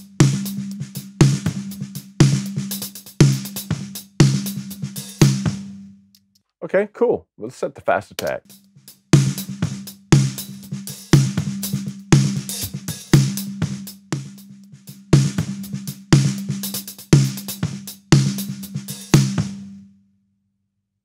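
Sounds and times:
quiet hi-hat spill: 0.0 - 6.3, 7.5 - 19.4.

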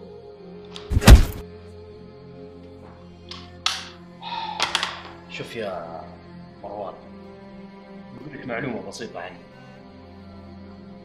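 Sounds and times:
ambient background music: 0.0 - 11.0
heavy deep thump: 0.9 - 1.4.

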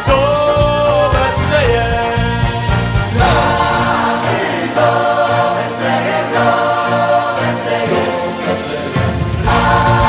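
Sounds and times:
choir singing a carol: 3.1 - 10.0.

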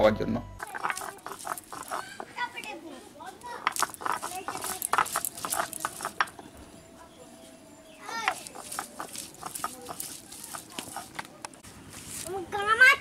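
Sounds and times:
stone roller knocking and grinding: 0.6 - 2.6, 3.6 - 6.4, 8.2 - 11.3.

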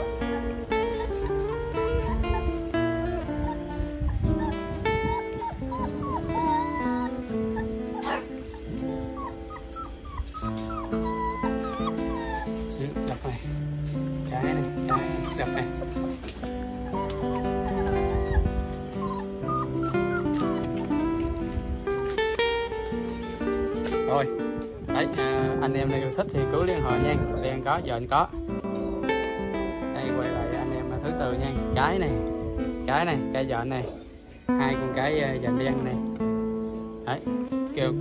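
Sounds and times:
acoustic guitar music: 0.0 - 38.0
puppies whimpering and yipping: 0.0 - 38.0.

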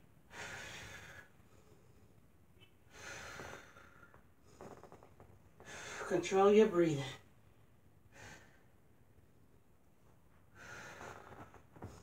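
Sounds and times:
woman breathing deeply: 0.3 - 2.2, 2.9 - 5.0, 10.5 - 12.0.

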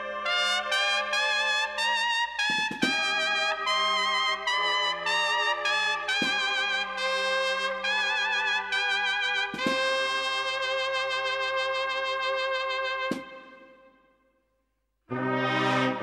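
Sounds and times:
sustained lower brass notes: 0.0 - 13.9, 15.1 - 16.0
trumpets playing slow melody: 0.0 - 14.0, 15.1 - 16.0
sharp strikes: 13.1 - 13.6.

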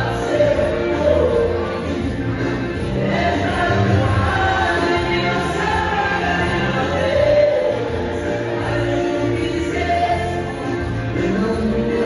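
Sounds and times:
band playing: 0.0 - 12.0
man singing: 0.0 - 12.0.

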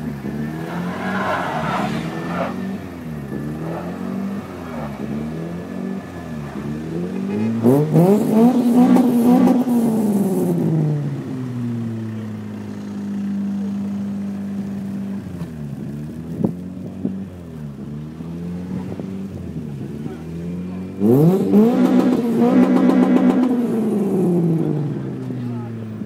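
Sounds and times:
car engines revving: 0.0 - 26.0.

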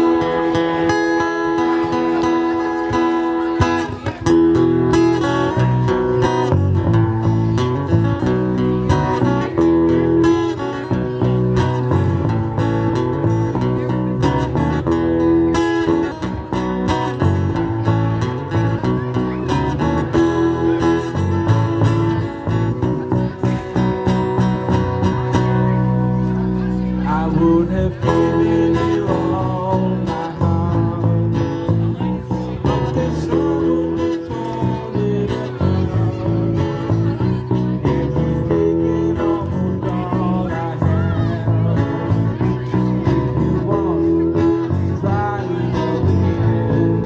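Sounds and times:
acoustic guitar strumming: 0.0 - 47.0
electric guitar: 0.0 - 47.0.

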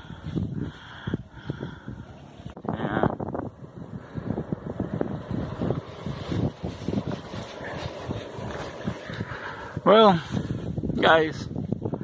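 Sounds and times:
bicycle rolling on asphalt: 0.0 - 12.0
wind buffeting microphone: 0.0 - 12.0.

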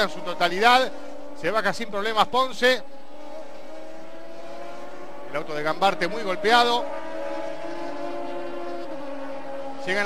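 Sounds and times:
engine drone: 0.0 - 10.0.

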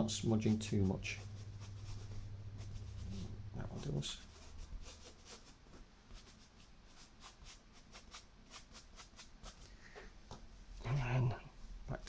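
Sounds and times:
chalk scratching on paper: 0.4 - 9.7.

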